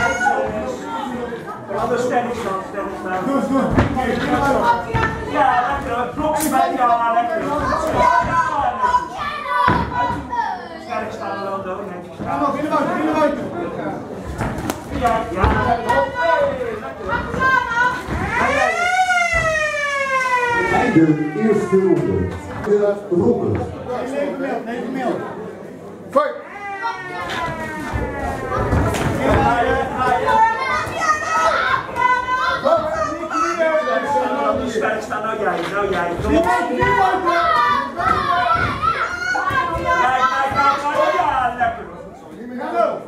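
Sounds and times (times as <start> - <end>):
excited voices shouting: 29.3 - 34.4, 36.4 - 41.6.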